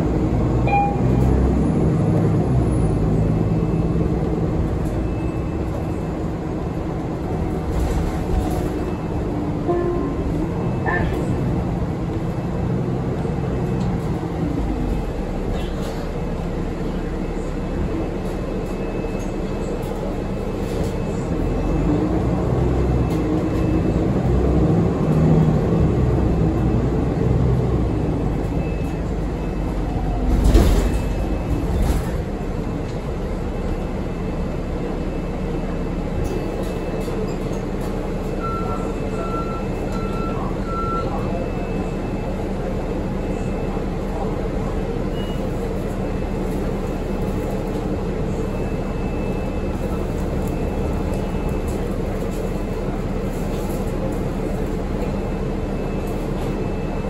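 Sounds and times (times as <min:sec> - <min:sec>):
bus engine and road rumble: 0:00.0 - 0:57.0.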